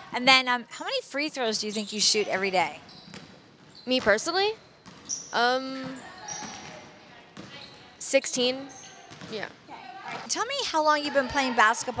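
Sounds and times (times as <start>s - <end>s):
basketballs bouncing on wooden floor: 2.2s - 10.4s.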